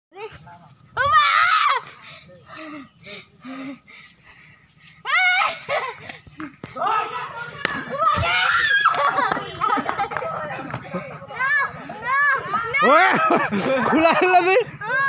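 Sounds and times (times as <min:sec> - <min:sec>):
children shouting and squealing: 0:01.0 - 0:02.1, 0:04.9 - 0:06.1, 0:06.8 - 0:15.0.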